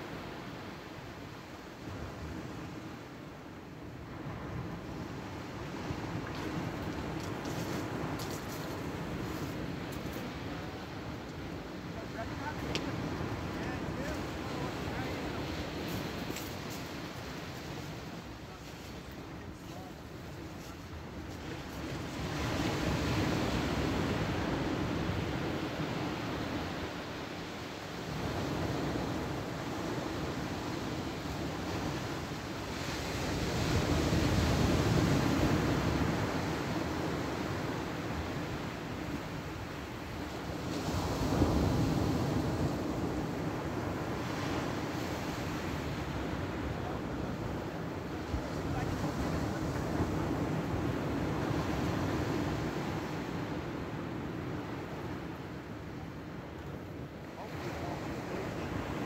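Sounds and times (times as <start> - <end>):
waves breaking on shingle beach: 5.3 - 55.0.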